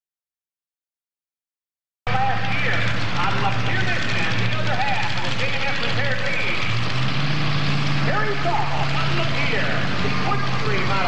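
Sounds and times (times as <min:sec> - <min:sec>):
announcer voice over loudspeaker: 0:02.1 - 0:06.7, 0:08.1 - 0:11.0
tractor engines idling: 0:02.1 - 0:11.0.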